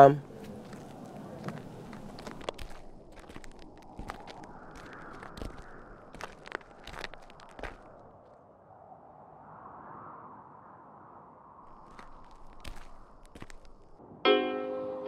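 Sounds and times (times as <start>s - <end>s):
footsteps on dirt road: 0.0s - 8.4s, 11.7s - 14.0s.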